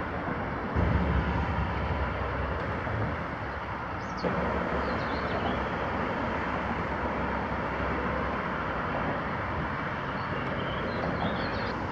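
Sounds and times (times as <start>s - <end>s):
outdoor rumble and hiss: 0.0s - 11.9s.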